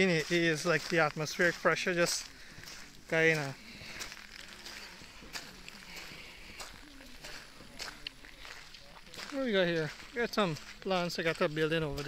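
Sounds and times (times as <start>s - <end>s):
faint voices talking: 0.0s - 12.0s
footsteps on wet ground: 0.0s - 12.0s.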